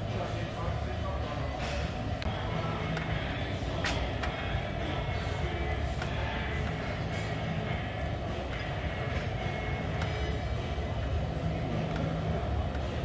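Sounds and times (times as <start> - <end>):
low rumble of gym room: 0.0 - 13.0.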